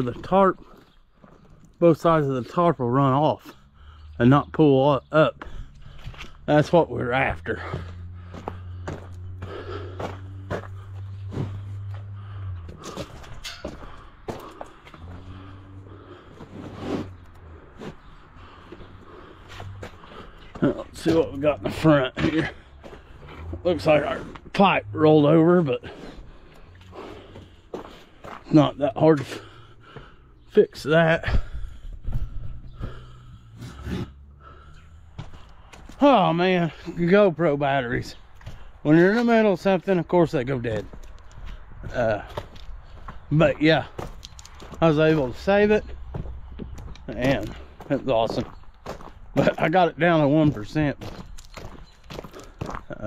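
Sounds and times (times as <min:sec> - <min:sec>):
footsteps on gravel: 0:00.0 - 0:53.0
man breathing out heavily: 0:07.6 - 0:20.6, 0:29.3 - 0:30.5, 0:31.2 - 0:36.0.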